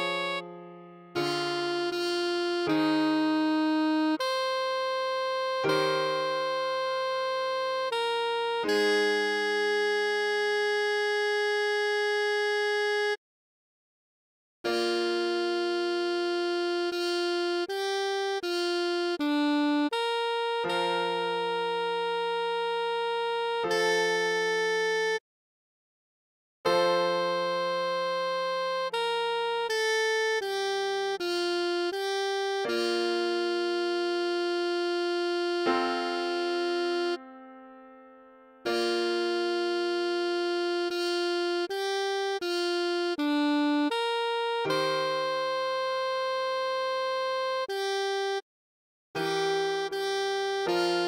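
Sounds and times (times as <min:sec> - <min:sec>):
saxophone long steady note: 0:00.0 - 0:13.2, 0:14.7 - 0:25.2, 0:26.7 - 0:48.4, 0:49.2 - 0:51.0
sustained keyboard chord: 0:00.0 - 0:13.2, 0:14.7 - 0:25.2, 0:26.7 - 0:48.4, 0:49.2 - 0:51.0
low major chord: 0:31.9 - 0:47.6
saxophone holding long note: 0:33.7 - 0:47.9.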